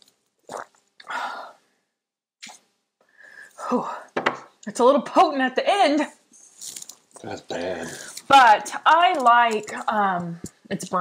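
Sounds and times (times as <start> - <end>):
woman gulping: 0.5 - 1.2.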